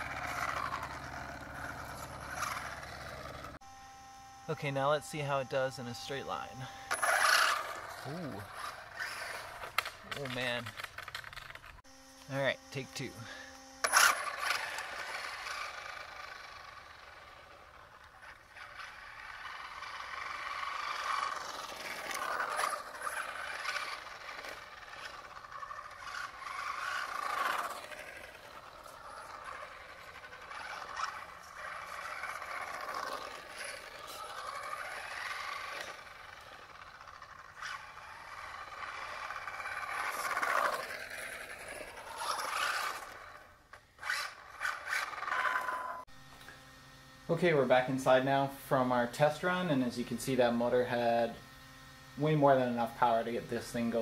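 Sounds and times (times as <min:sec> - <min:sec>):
tyre noise on asphalt: 0:00.0 - 0:03.7, 0:05.7 - 0:12.3, 0:13.0 - 0:46.4
electric motor whining: 0:00.0 - 0:54.0.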